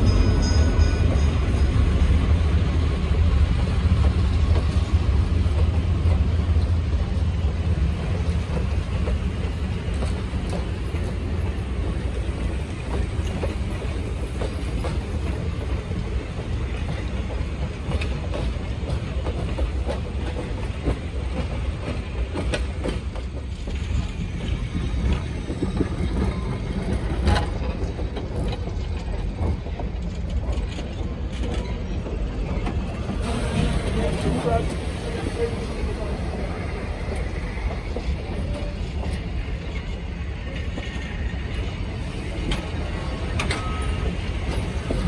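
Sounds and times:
train wheels rumbling: 0.0 - 45.0.

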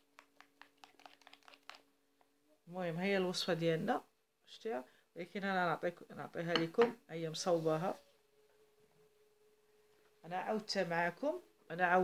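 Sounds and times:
low steady hum: 1.0 - 12.0.

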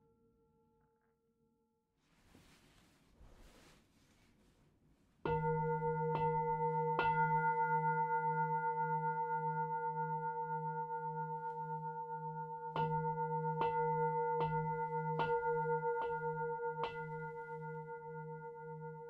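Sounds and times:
singing bowl ringing: 5.3 - 19.0.

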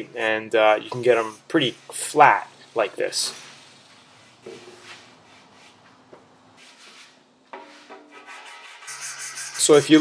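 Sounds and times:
sandpaper rubbing back and forth: 6.6 - 10.0.

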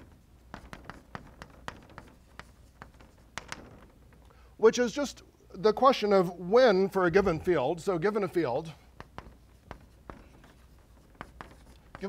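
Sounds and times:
chalk tapping on blackboard: 0.0 - 3.9, 8.7 - 12.0.

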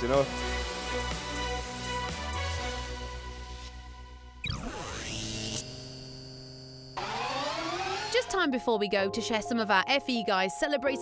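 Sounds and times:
synthesized electronic drone: 3.3 - 8.5.

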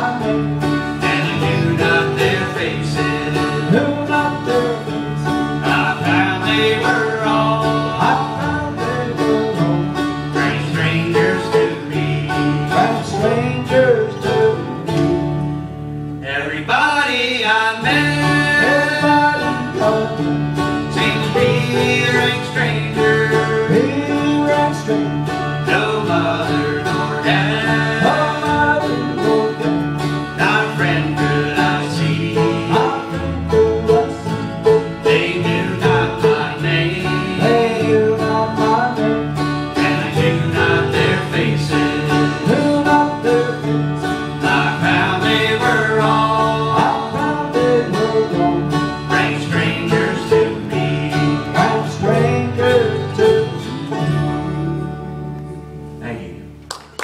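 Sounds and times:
banjo: 0.0 - 56.9
acoustic guitar: 0.0 - 57.0
mandolin: 0.0 - 57.0.

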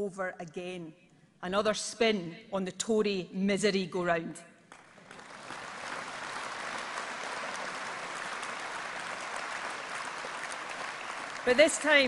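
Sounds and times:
audience applauding: 4.7 - 12.0.

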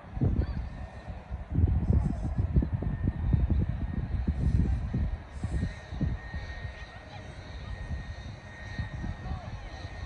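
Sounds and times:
steady high whine: 0.0 - 10.0
wind rumble on microphone: 0.0 - 10.0.

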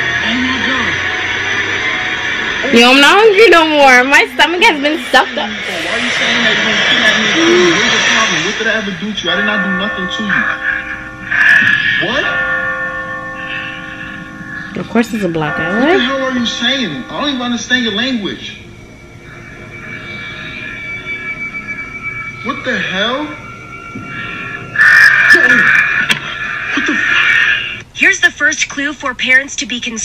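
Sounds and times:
bell-like drone chord: 0.0 - 26.9
steady high electronic tone: 0.0 - 27.8
harsh distorted screech: 4.7 - 9.8, 10.5 - 12.6, 17.8 - 27.8
short rising glide: 18.7 - 26.6.

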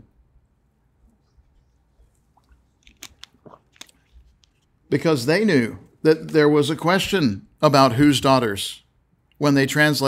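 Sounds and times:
mouth and swallowing clicks: 2.1 - 4.8.

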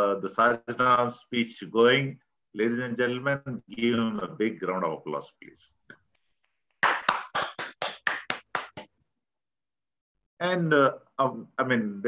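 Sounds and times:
person clapping hands: 6.7 - 9.0.

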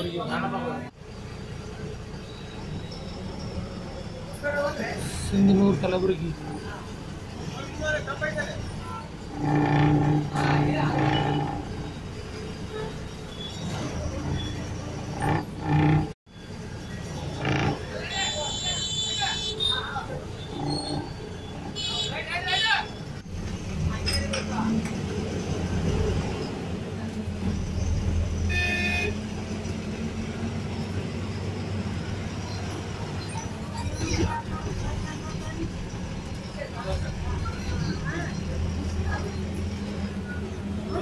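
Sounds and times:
bus engine rumble: 0.0 - 41.0
people's voices: 32.8 - 41.0.

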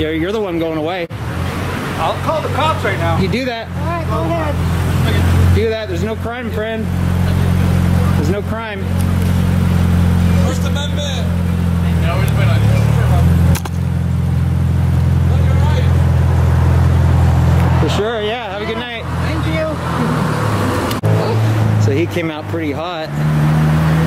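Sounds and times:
car engine humming: 0.0 - 24.0.

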